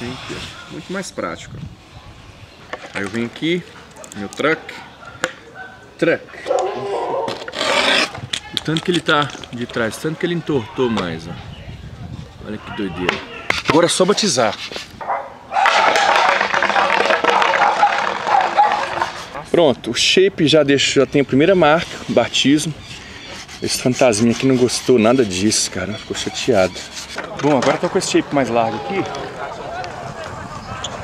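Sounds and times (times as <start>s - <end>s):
skateboard wheels rolling on asphalt: 7.2s - 8.4s, 14.5s - 19.5s, 26.7s - 31.0s
background voices talking: 15.6s - 31.0s.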